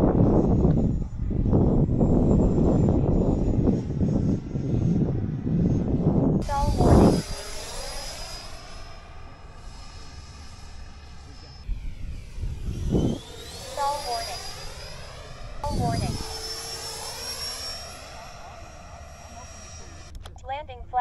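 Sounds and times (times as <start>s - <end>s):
low rush of air: 0.0s - 13.6s
rc jet high-pitched whine: 6.4s - 20.8s.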